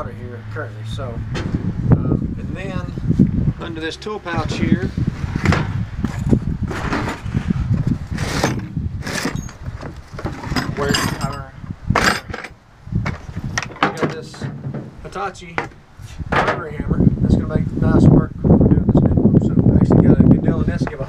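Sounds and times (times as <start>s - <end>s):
tools and bags knocking and rustling: 5.4s - 7.3s, 8.2s - 15.0s.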